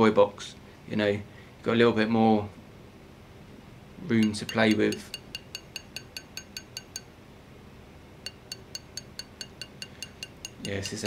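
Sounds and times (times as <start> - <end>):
hammer tapping metal: 4.1 - 7.2, 8.3 - 11.0.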